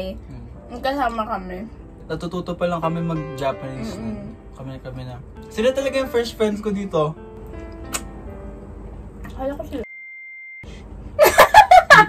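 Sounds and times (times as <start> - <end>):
censor bleep tone: 9.8 - 10.7
people laughing loudly: 11.2 - 12.0.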